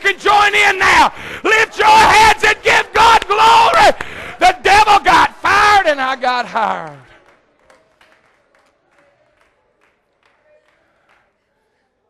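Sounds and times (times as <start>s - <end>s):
faint hand claps: 7.2s - 11.4s.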